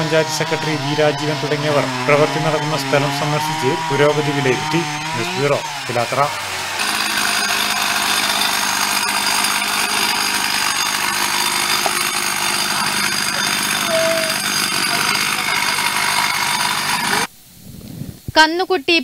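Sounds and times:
chainsaw cutting wood: 0:00.0 - 0:17.3.

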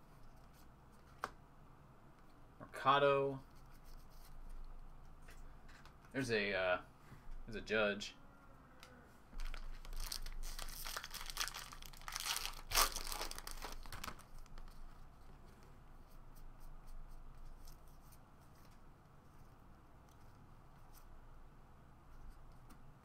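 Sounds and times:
foil pack tearing and crinkling: 0:09.4 - 0:14.5.

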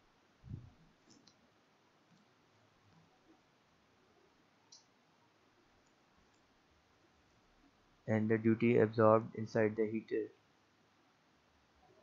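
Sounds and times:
computer mouse clicks: 0:01.0 - 0:01.4, 0:04.7 - 0:04.9.

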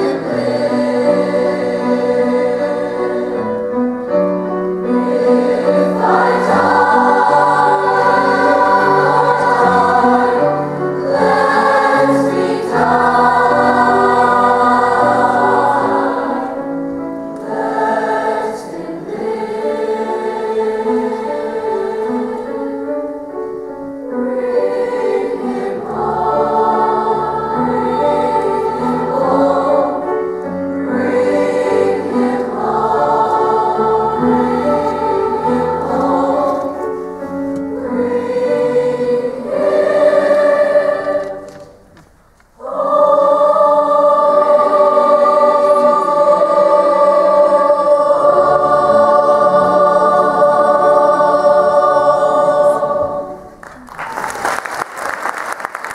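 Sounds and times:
choir singing: 0:00.0 - 0:54.4
piano: 0:00.0 - 0:55.9
applause: 0:53.6 - 0:55.9.

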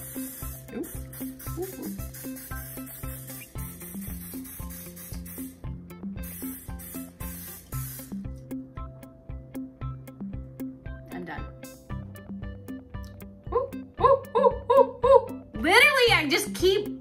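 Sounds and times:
aerosol cooking spray hissing: 0:00.0 - 0:08.4
background music with steady beat: 0:00.0 - 0:17.0.

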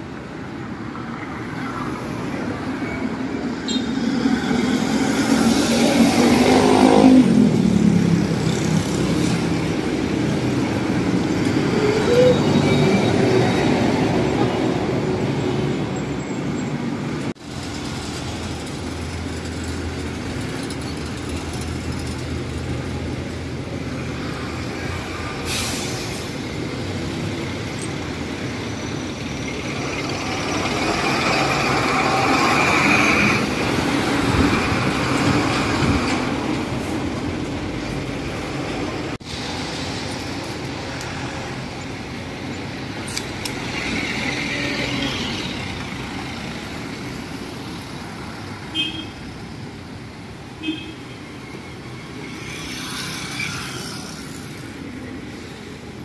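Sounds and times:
engine rumble and road noise: 0:00.0 - 0:56.0
vehicles passing close by: 0:00.0 - 0:56.0.

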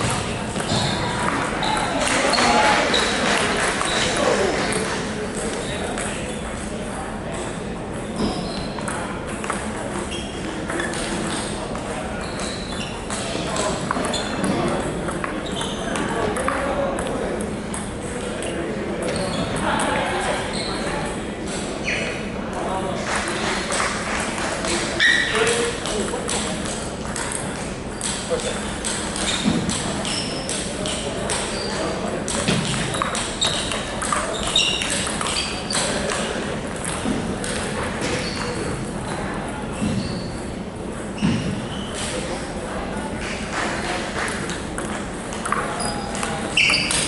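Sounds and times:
voices in background: 0:00.0 - 0:47.0.

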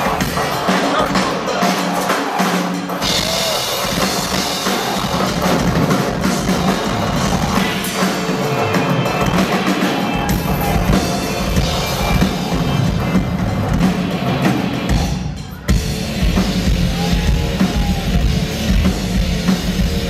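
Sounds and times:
drums and cymbals: 0:00.0 - 0:20.0
heavy bass drum: 0:03.0 - 0:08.2, 0:09.2 - 0:20.0.

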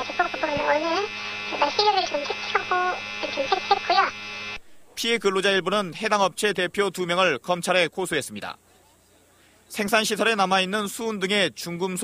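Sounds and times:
steady electrical hum: 0:00.0 - 0:12.0
person speaking: 0:04.8 - 0:08.6.

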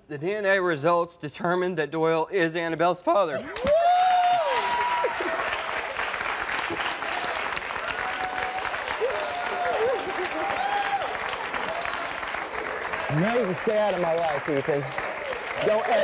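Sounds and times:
audience applauding: 0:03.5 - 0:16.0.

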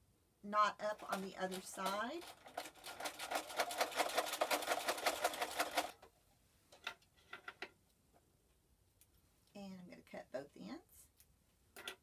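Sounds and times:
sewing machine stitching: 0:01.0 - 0:06.0.

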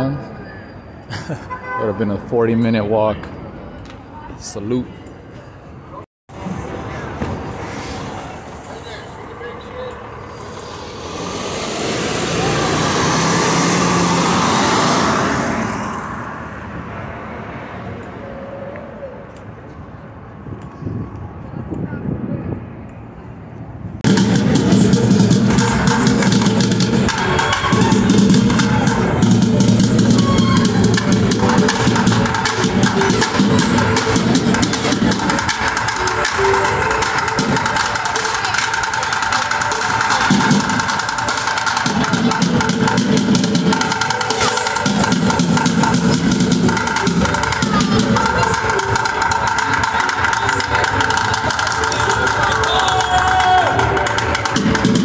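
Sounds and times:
drumming on plastic buckets: 0:24.0 - 0:55.0.

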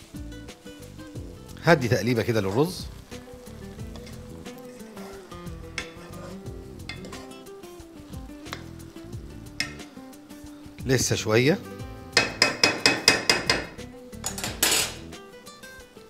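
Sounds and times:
rice sizzling: 0:00.0 - 0:16.0
wooden spoon scraping pot: 0:03.8 - 0:07.4.

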